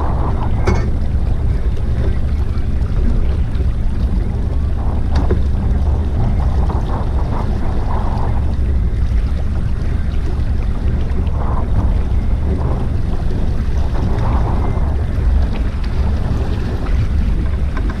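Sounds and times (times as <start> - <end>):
boat motor running: 0.0 - 18.0
water rushing past boat hull: 0.0 - 18.0
wind rumble on microphone: 0.0 - 18.0.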